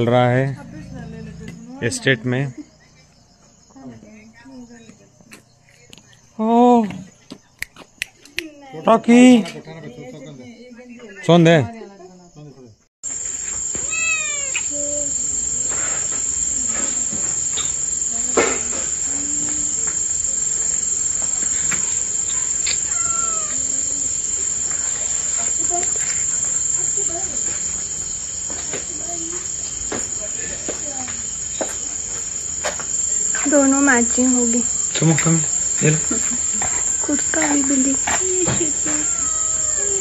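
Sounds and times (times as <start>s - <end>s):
crickets chirring: 0.0s - 40.0s
kitten mewing: 13.8s - 14.7s, 22.9s - 23.6s.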